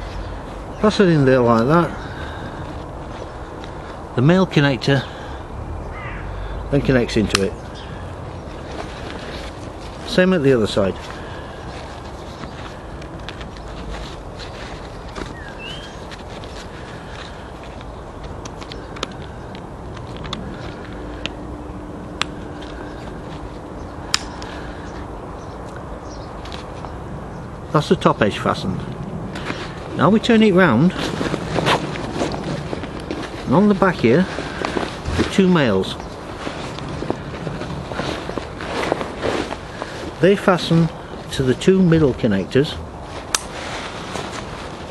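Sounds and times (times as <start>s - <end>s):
nylon pouches rustling: 0.0s - 44.9s
outdoor background hiss: 0.0s - 44.9s.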